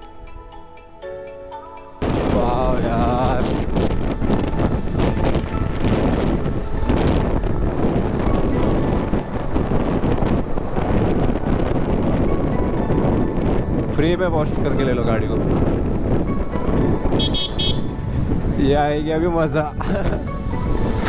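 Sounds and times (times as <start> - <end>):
road noise: 0.0 - 21.0
motorcycle running: 2.0 - 13.7
wind buffeting microphone: 2.0 - 21.0.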